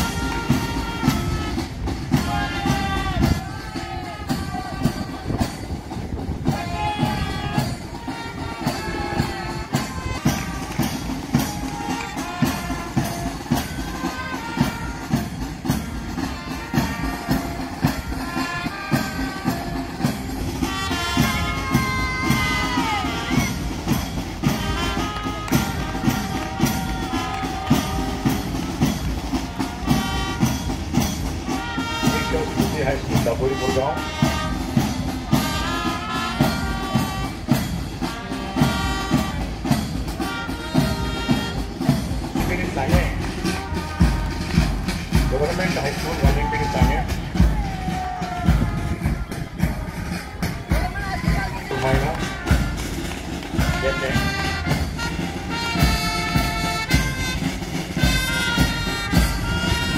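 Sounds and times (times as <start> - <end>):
march music melody: 0.0 - 59.9
steady drum beat: 0.0 - 59.9
wind instruments holding notes: 0.0 - 59.9.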